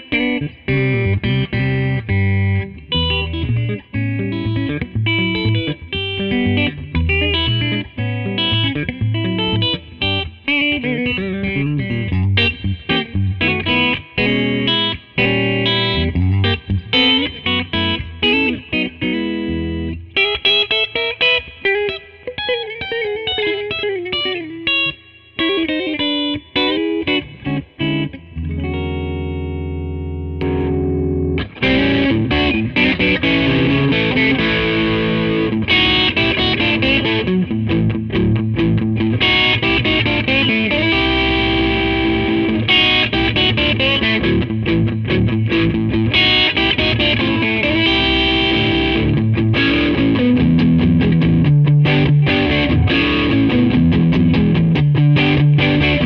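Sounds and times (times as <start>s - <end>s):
overdriven electric guitar playing: 0.0s - 56.0s.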